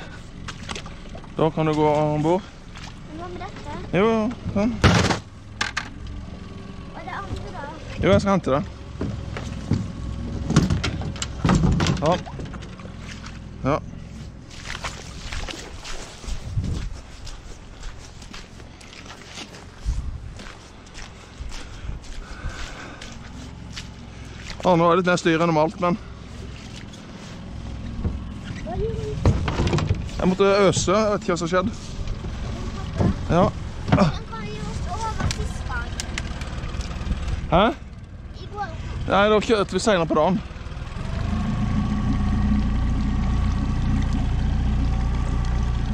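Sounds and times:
outboard motor running: 0:00.0 - 0:45.9
knocks and thumps in plastic boat: 0:08.9 - 0:13.4, 0:27.8 - 0:31.0, 0:31.9 - 0:36.2.

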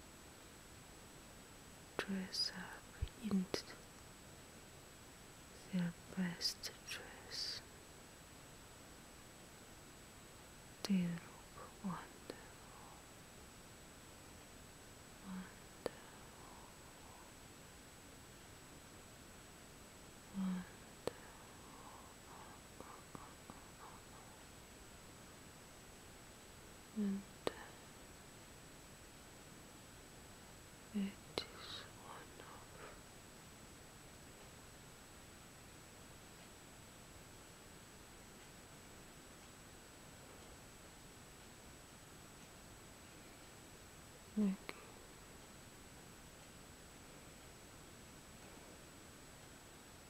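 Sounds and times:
woman whispering: 0:02.0 - 0:03.8, 0:05.6 - 0:07.7, 0:10.8 - 0:13.1, 0:15.2 - 0:17.4, 0:20.3 - 0:24.4, 0:26.9 - 0:27.9, 0:30.9 - 0:33.0, 0:44.3 - 0:45.1.

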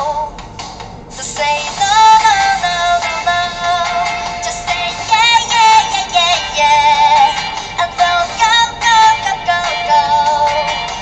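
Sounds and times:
woman singing pop melody: 0:00.0 - 0:00.4, 0:01.2 - 0:11.0.

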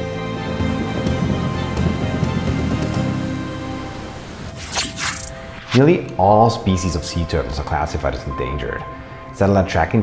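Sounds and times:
soft music of sustained chords: 0:00.0 - 0:10.0.

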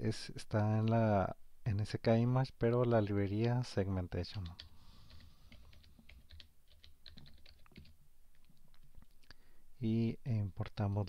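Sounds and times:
computer keyboard typing: 0:04.2 - 0:09.2.

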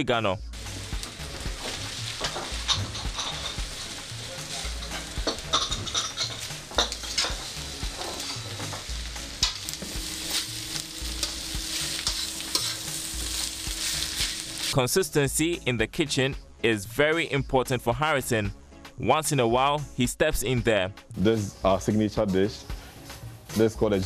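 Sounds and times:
vegetables sizzling in a wok: 0:00.6 - 0:14.8
spatula scraping a pan: 0:01.4 - 0:08.9, 0:09.6 - 0:14.7.

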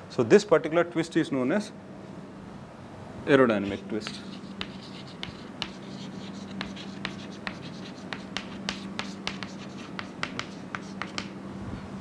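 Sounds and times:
chalk tapping and scratching: 0:03.6 - 0:11.4.

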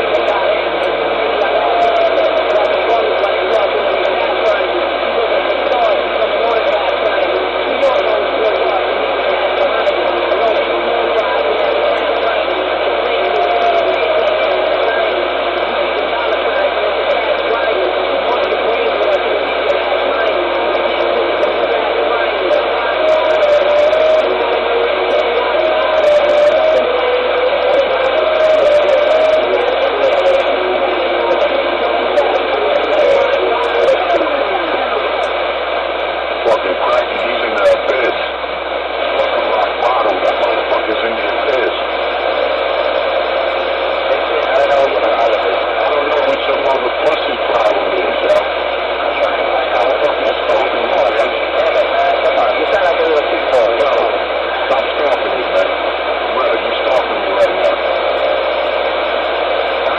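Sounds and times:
steady whistling tones: 0:00.0 - 0:38.4
radio static: 0:00.0 - 0:59.9
unintelligible radio voices: 0:00.0 - 0:59.9.

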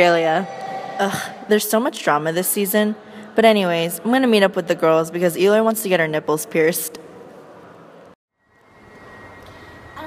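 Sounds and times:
thin high whine: 0:08.4 - 0:10.0.

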